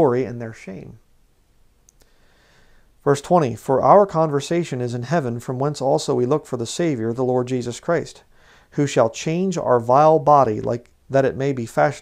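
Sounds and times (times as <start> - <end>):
soft hiss: 0.0 - 12.0
faint clicks: 1.8 - 2.2.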